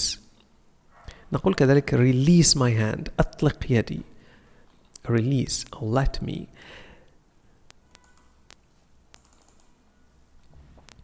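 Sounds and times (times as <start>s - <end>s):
computer mouse clicks: 7.7s - 9.8s.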